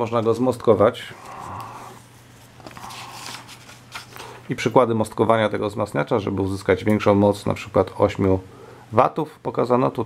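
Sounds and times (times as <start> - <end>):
book pages turning: 1.2 - 4.4.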